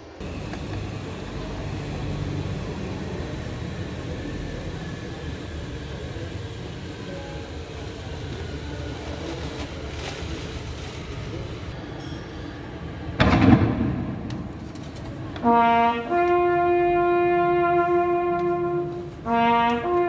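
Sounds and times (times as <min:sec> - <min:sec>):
low outdoor rumble: 0:00.1 - 0:20.0.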